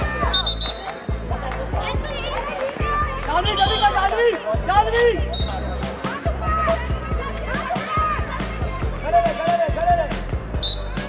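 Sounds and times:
girls shouting: 6.1 - 8.8.

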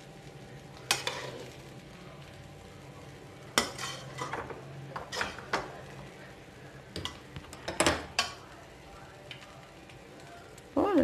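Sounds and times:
spatula stirring rice in pan: 0.0 - 10.8
spatula clanking on pan: 0.8 - 1.4, 3.5 - 5.7, 6.9 - 8.4.

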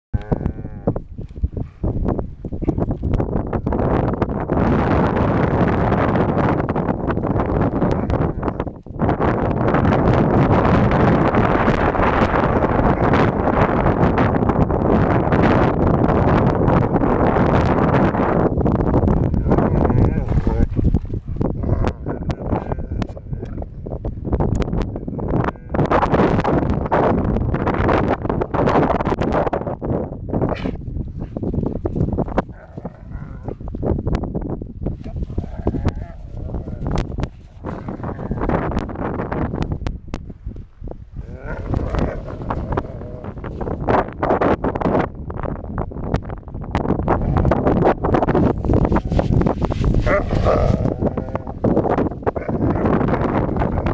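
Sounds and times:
dogs growling: 9.6 - 14.3, 19.0 - 24.0, 32.2 - 33.8, 34.9 - 39.0, 41.1 - 44.1, 48.4 - 53.9.

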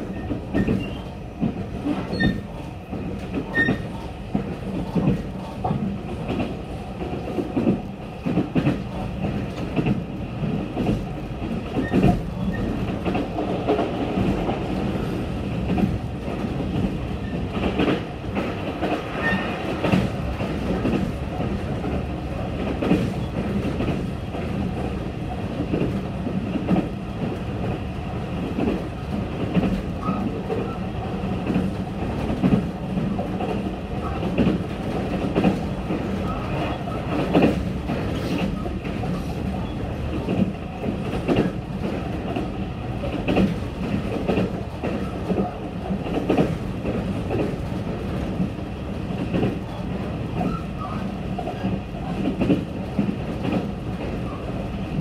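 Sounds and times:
train wheels rumbling on rails: 0.0 - 55.0.

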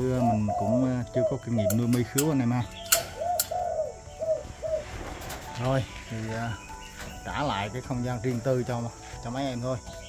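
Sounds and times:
dove cooing: 0.0 - 7.2.

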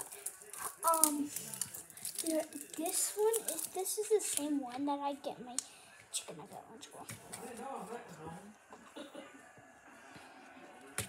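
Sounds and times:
small objects clicking and rattling: 0.0 - 4.5.

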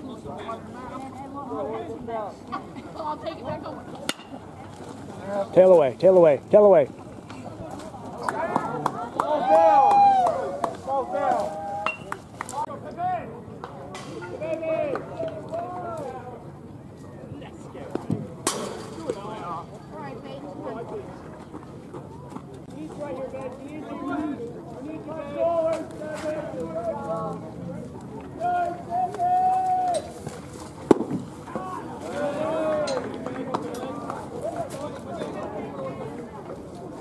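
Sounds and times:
people calling out and chattering: 0.0 - 37.0
long held shout: 9.2 - 10.6, 28.4 - 30.0.

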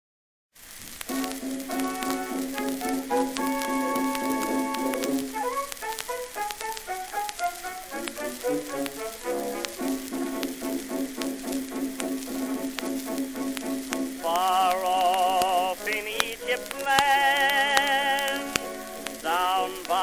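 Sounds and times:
record surface crackle: 0.6 - 20.0
orchestral music: 1.1 - 14.9.

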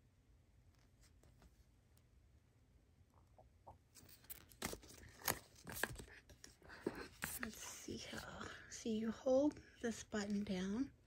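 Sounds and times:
paper leaflet rustling: 4.0 - 8.3.

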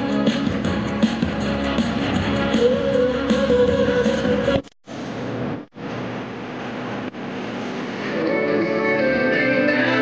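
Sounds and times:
outdoor street noise: 0.0 - 10.0.

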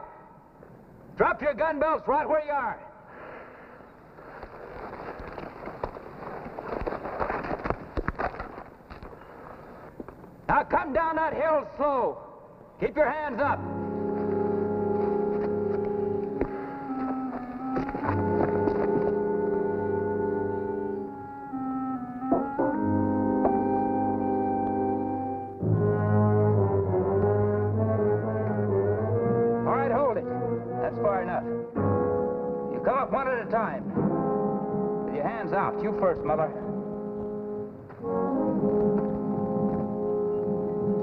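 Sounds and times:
orchestral score led by brass: 13.3 - 41.0.

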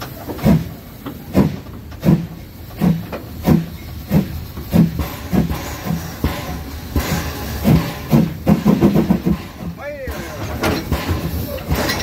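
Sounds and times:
steam locomotive rumble: 0.0 - 12.0
people talking: 9.8 - 12.0.

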